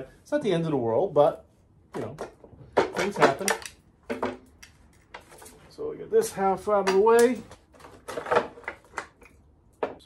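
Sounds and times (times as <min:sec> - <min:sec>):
plastic cowling knocks and clatters: 0:06.8 - 0:09.2.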